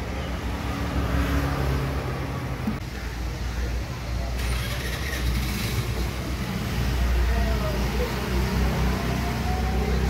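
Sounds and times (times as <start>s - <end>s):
traffic rumble: 0.0s - 10.0s
traffic hiss: 2.2s - 10.0s.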